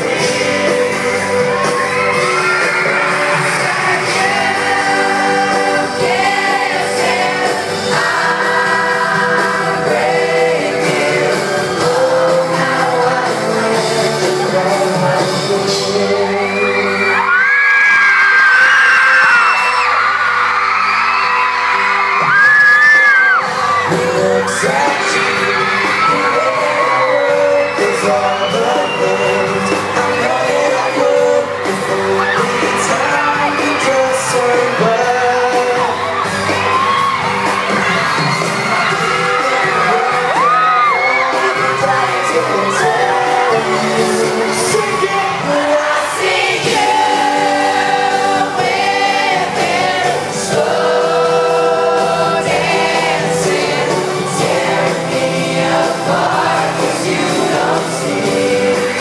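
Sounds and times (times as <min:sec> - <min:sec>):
backing band playing: 0:00.0 - 0:59.0
boy band singing pop song: 0:00.0 - 0:59.0
crowd screaming: 0:00.0 - 0:59.0.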